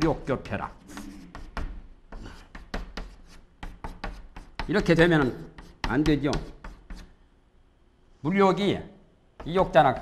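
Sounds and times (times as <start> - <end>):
chalk tapping and scratching: 0.9 - 7.2.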